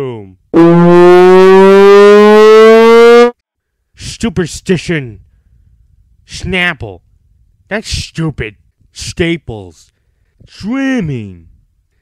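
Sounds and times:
long loud fart: 0.6s - 3.3s.

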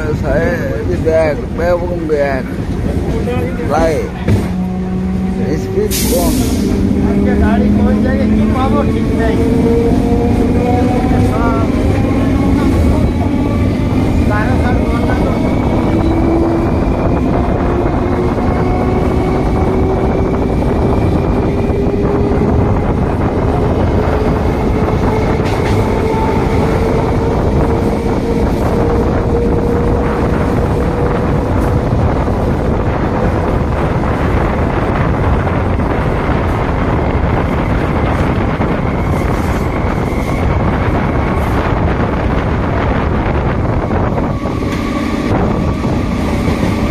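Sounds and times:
train wheels rushing on rail: 0.0s - 46.9s.

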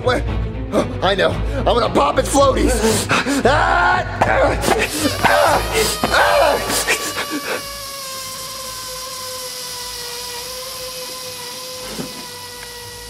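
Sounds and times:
air escaping with whistle and hiss: 4.6s - 13.0s.

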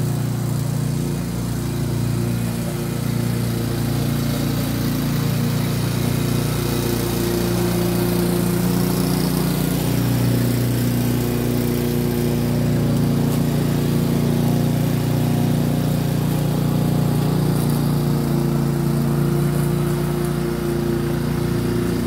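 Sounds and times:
lawnmower engine running: 0.0s - 22.0s.

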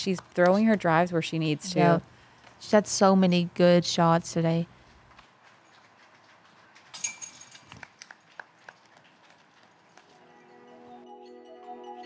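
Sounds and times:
faint outdoor ambience: 0.0s - 12.0s
high jingle: 7.0s - 7.8s.

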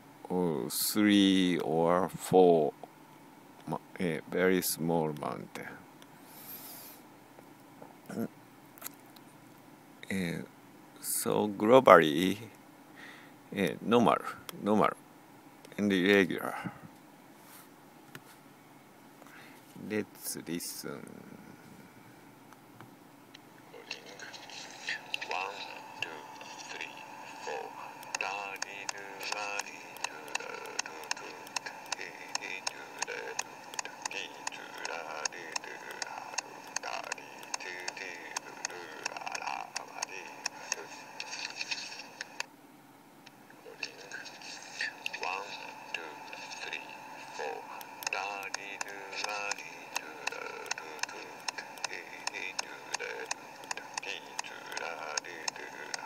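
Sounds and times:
voice through small speaker: 0.2s - 2.8s, 8.1s - 8.3s, 15.7s - 16.9s, 19.8s - 21.7s, 23.7s - 42.4s, 43.6s - 56.0s
rapid regular taps: 27.3s - 42.5s, 47.2s - 56.0s.

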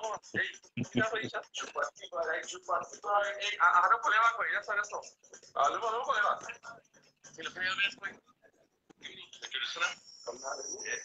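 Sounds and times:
broken-up talk over video call: 0.0s - 11.0s.

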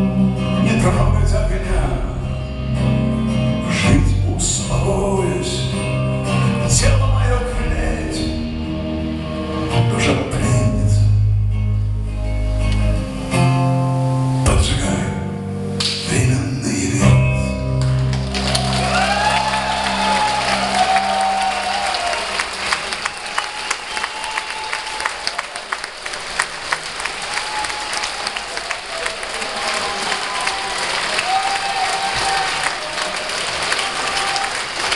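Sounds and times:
acoustic guitar and bass chords: 0.0s - 18.9s
audience applause: 17.8s - 34.9s
audience cheering: 18.1s - 34.9s.

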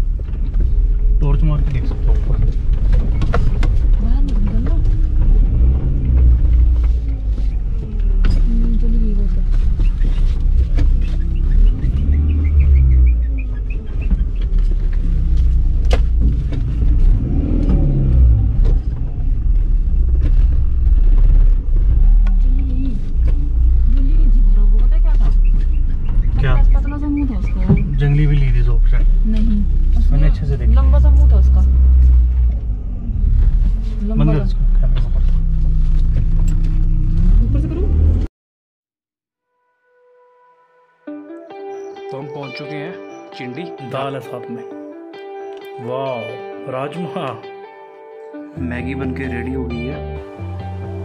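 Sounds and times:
car road rumble inside cabin: 0.0s - 38.3s.

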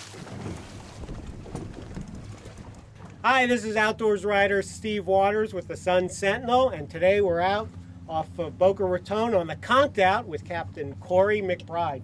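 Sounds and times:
wind noise on microphone: 0.0s - 3.0s
low steady hum: 0.0s - 12.0s.

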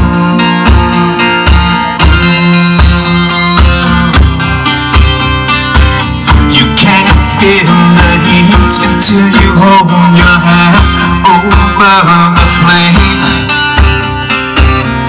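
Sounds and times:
amplified acoustic guitar strumming: 0.0s - 15.0s.

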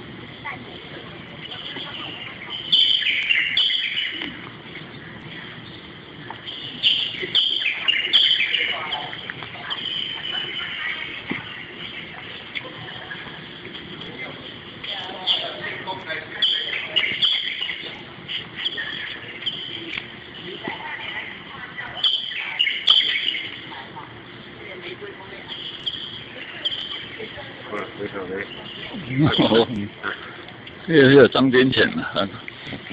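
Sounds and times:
birds chirping: 1.2s - 31.4s.

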